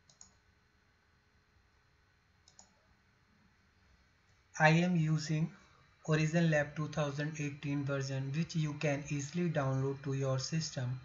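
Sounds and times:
faint mouse clicks: 0:00.0 - 0:00.4, 0:02.4 - 0:02.8.

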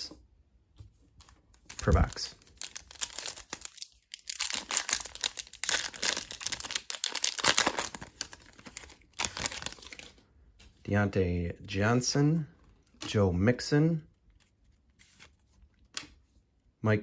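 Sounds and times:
foil wrapper crinkling and tearing: 0:01.6 - 0:10.2.

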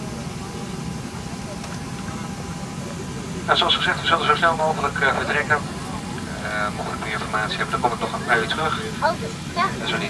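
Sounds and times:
air conditioning hum: 0:00.0 - 0:10.0.

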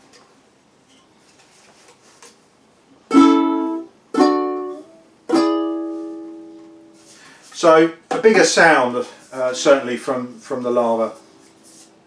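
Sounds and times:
ukulele chords strummed: 0:03.1 - 0:07.0.

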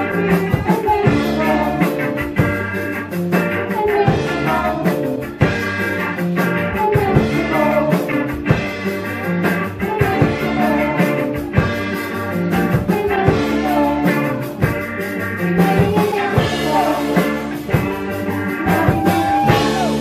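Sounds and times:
drum kit: 0:00.0 - 0:20.0
electric guitar: 0:00.0 - 0:20.0
keyboard: 0:00.0 - 0:20.0.

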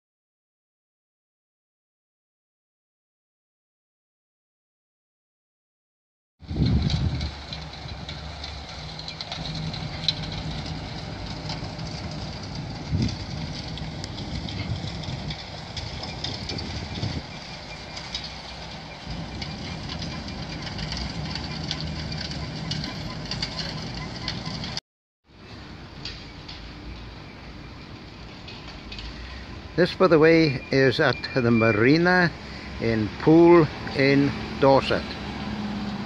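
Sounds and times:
low engine drone: 0:06.4 - 0:36.0
faint crackling: 0:06.6 - 0:24.8.

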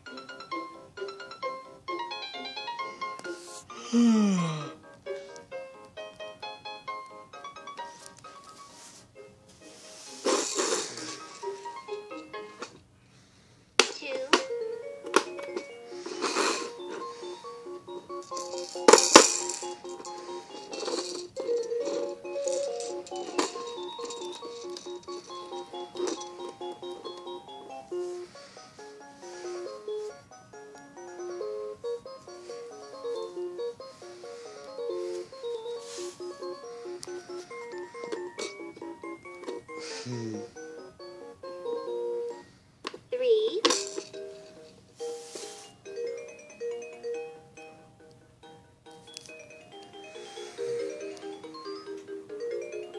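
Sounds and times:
toy piano electronic melody: 0:00.0 - 0:03.8, 0:04.8 - 0:08.6, 0:11.0 - 0:12.7, 0:14.0 - 0:42.6, 0:43.2 - 0:52.9.

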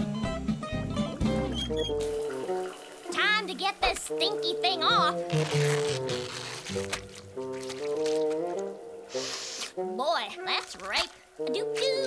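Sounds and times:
cartoon background music: 0:00.0 - 0:12.0
shower running: 0:01.6 - 0:09.7.

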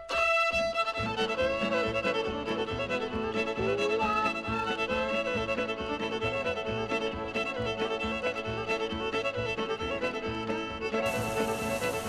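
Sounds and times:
country music with fiddle: 0:00.0 - 0:12.0.

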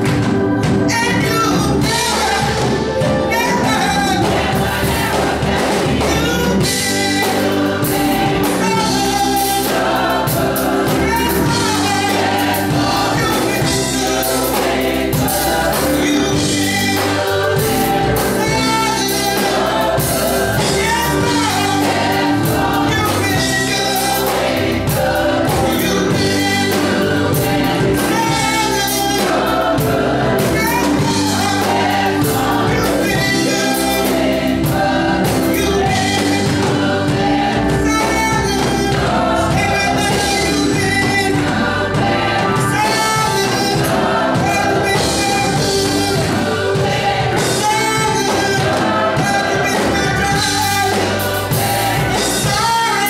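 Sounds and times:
drum kit steady beat: 0:00.0 - 0:53.0
gospel choir singing: 0:00.0 - 0:53.0.

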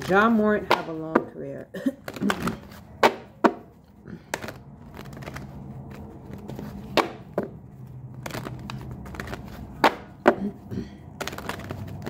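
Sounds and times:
cards being shuffled: 0:02.0 - 0:12.0
cards slapping: 0:02.0 - 0:12.0.

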